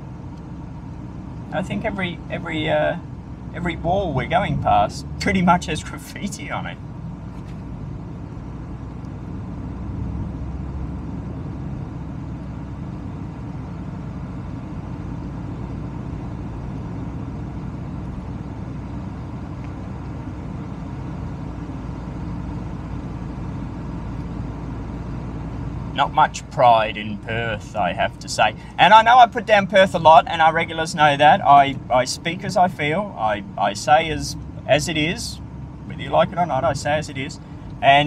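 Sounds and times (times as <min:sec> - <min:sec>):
car road noise rumble: 0:00.0 - 0:38.0.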